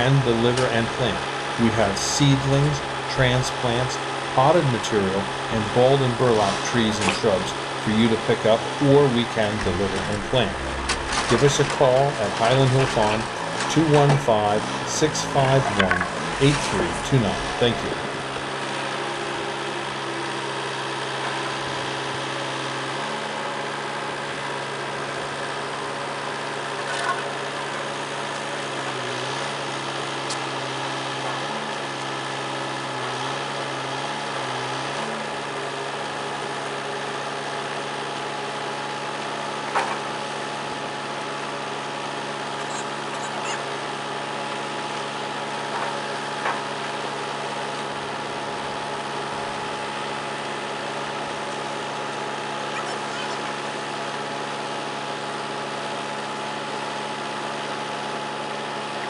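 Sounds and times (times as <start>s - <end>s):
farm machinery engines idling: 0.0s - 59.0s.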